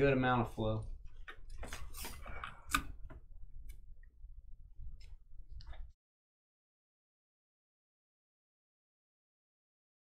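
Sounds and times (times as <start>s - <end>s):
cards and sleeves clicking and rustling: 1.6s - 2.8s.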